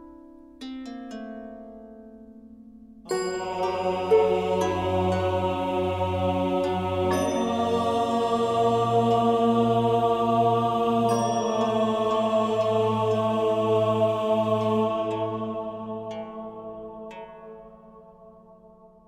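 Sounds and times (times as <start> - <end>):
low voices chanting: 3.1 - 18.0
low sustained drone: 3.4 - 17.1.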